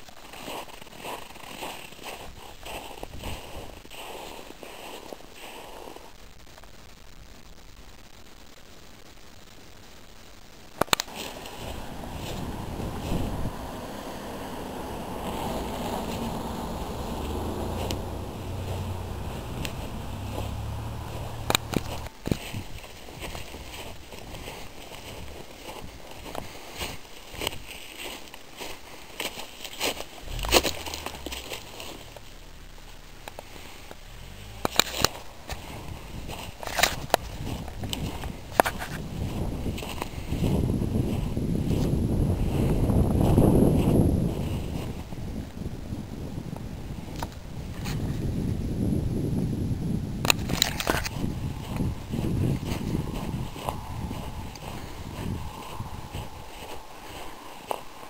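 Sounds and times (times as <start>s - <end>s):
sharp clicks and crackles: 0.0s - 12.4s, 17.0s - 39.0s, 50.2s - 58.0s
wind on microphone: 11.1s - 27.7s, 33.9s - 58.0s.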